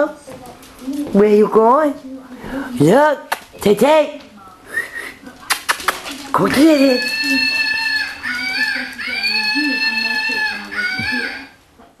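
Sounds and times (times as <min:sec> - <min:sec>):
small dog whining: 0:06.5 - 0:11.5.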